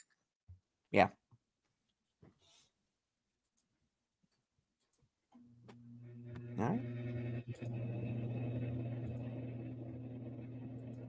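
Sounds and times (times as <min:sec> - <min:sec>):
low hum with overtones: 0:05.4 - 0:11.0.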